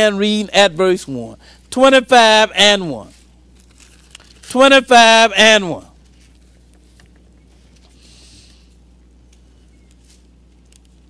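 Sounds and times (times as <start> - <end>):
low electrical hum: 0.0 - 11.0
rustling: 3.0 - 4.5, 6.0 - 11.0.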